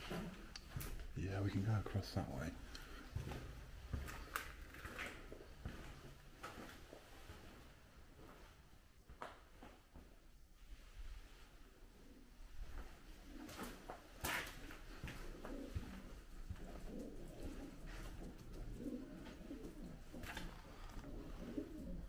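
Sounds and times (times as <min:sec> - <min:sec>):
pigeons cooing: 0:13.2 - 0:22.0.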